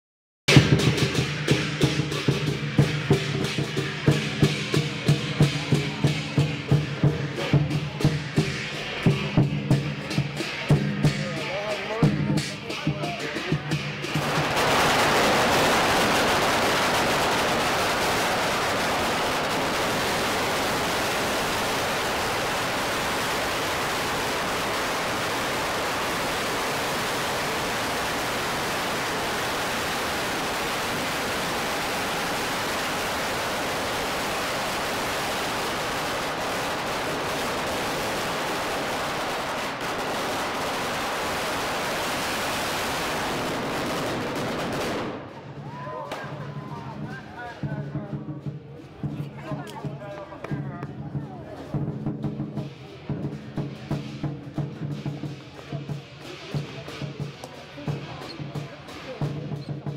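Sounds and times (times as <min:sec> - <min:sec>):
firecrackers crackling: 0:00.5 - 0:59.9.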